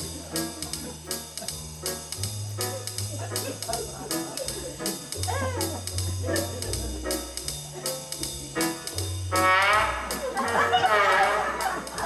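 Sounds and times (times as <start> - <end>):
electronic organ playing jazz: 0.0 - 12.0
stepping bass line: 0.0 - 12.0.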